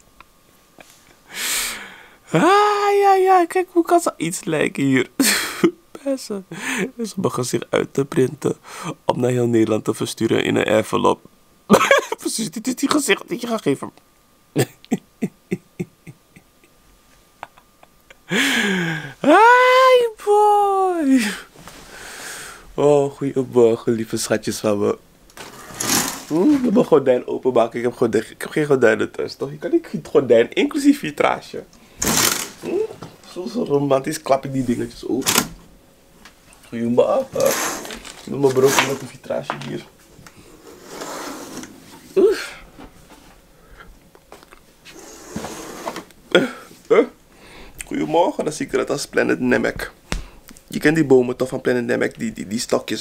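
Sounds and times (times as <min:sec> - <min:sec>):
man laughing: 0:05.2 - 0:05.8, 0:11.7 - 0:12.5, 0:14.6 - 0:16.8, 0:17.4 - 0:21.4
curtain sliding along rail: 0:25.4 - 0:26.7, 0:32.0 - 0:32.6, 0:37.3 - 0:39.0, 0:40.5 - 0:42.0, 0:44.9 - 0:46.1.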